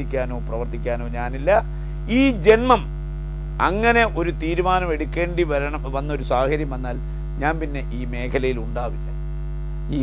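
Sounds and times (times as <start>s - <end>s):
man talking: 0.0s - 2.9s, 3.6s - 9.2s
low electrical mains hum: 0.0s - 10.0s.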